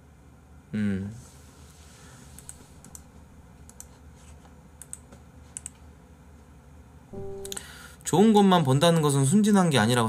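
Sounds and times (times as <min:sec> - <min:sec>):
low room hum: 0:00.0 - 0:10.0
computer keys clicking: 0:02.4 - 0:04.0, 0:04.8 - 0:05.8.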